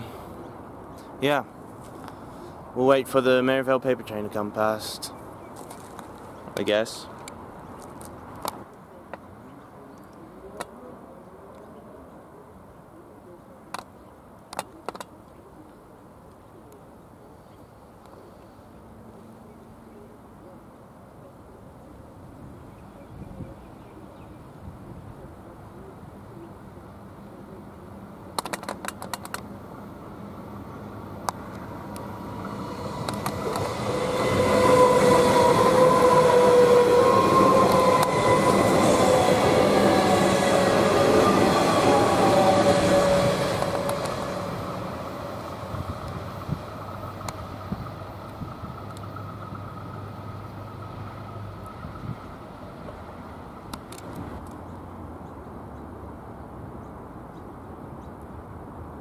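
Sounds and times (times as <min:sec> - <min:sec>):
electric train passing: 0:25.4 - 0:55.3.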